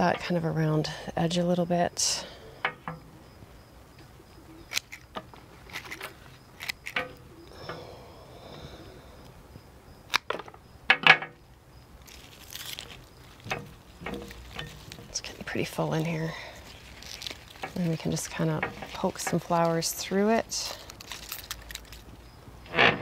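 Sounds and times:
leaves rustling: 11.9 - 23.0.

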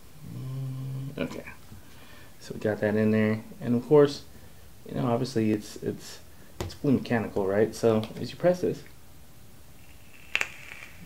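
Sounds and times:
faint high hiss of coil: 9.7 - 11.0.

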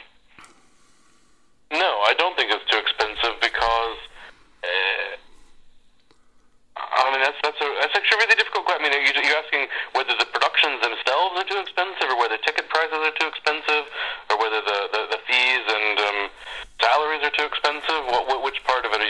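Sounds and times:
person talking: 1.7 - 5.4, 6.8 - 19.0.

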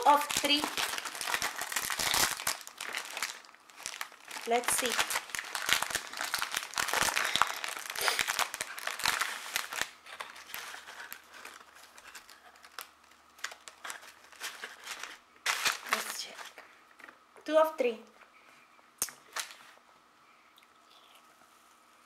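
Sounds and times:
plastic wrapper crinkling and tearing: 0.0 - 17.2, 19.2 - 19.8.

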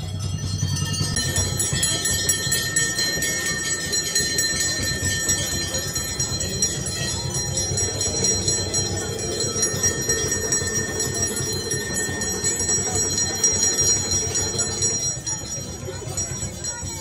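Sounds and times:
murmur of a crowd: 0.0 - 17.0
temple bells ringing: 0.0 - 17.0.

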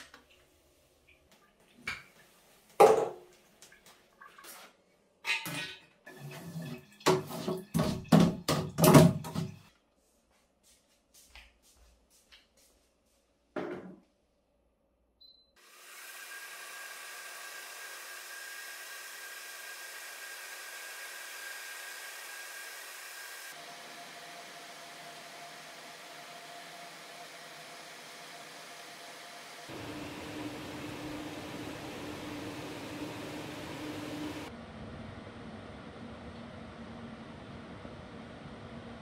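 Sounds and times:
stand fan running: 15.7 - 39.0.

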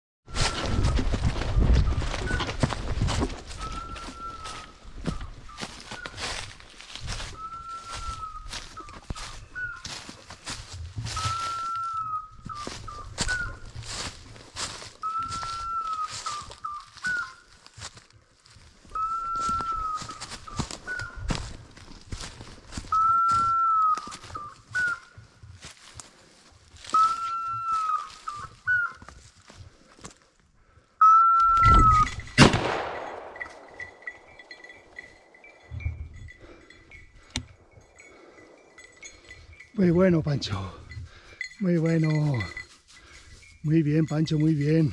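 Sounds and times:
footsteps crunching dry leaves: 0.3 - 30.4, 41.6 - 44.9
electronic collar beeps: 3.6 - 6.5, 11.1 - 13.6, 33.4 - 42.7
loud shotgun shot: 32.4 - 33.7.

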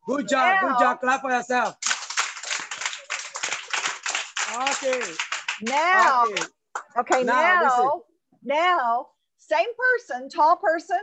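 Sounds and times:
children clapping: 1.5 - 7.4.

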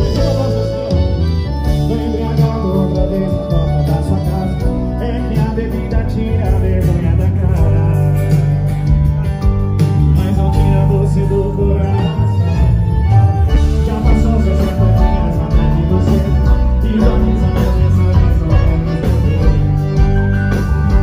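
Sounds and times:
live band music over loudspeakers: 0.0 - 21.0
person singing: 0.0 - 21.0.

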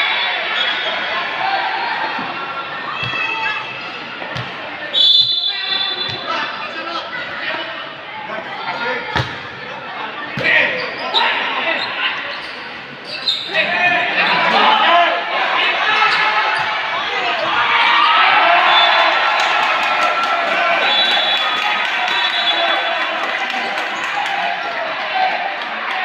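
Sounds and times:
crowd chattering and calling out: 0.0 - 26.0
referee's whistle blast: 4.9 - 6.3, 20.8 - 22.9.

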